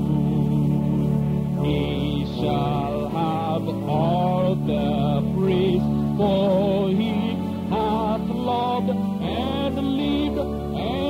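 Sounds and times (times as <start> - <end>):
hymn singing: 0.0 - 11.0.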